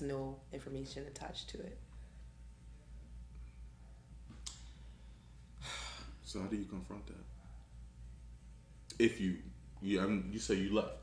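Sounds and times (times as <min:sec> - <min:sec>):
faint low hum: 0:00.0 - 0:11.0
mouth click: 0:04.4 - 0:04.7
breathy sigh: 0:05.6 - 0:06.2.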